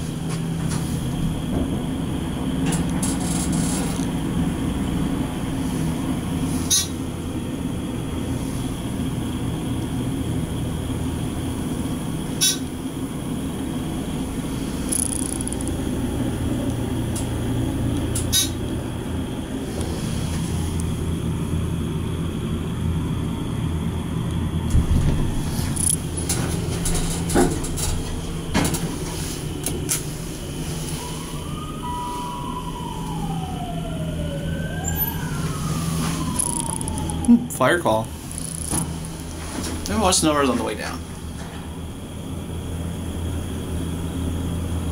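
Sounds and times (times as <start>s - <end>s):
fire truck siren wailing: 0.0s - 21.9s, 29.3s - 41.1s
elevator pump motor humming: 0.0s - 44.9s.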